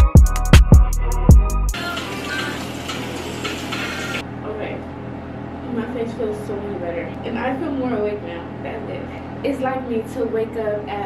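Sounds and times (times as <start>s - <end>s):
beat-driven music with deep bass: 0.0s - 2.1s.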